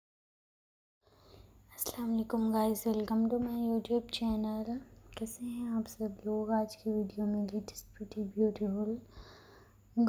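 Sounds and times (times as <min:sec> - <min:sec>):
faint hiss: 0:01.0 - 0:10.0
person speaking: 0:01.7 - 0:09.1.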